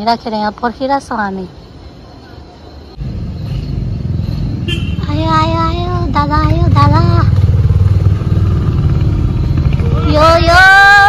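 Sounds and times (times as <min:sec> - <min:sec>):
motorbike engine at low revs: 0:03.0 - 0:10.4.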